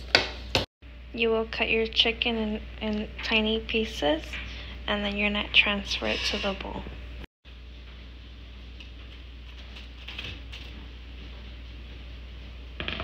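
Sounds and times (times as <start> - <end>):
low appliance hum: 0.0 - 13.0.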